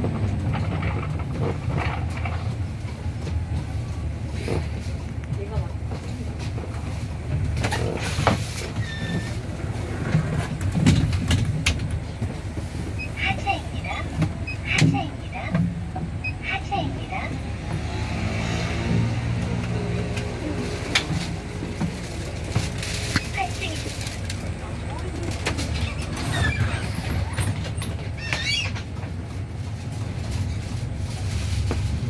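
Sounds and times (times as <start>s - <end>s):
bus and road rumble: 0.0s - 32.0s.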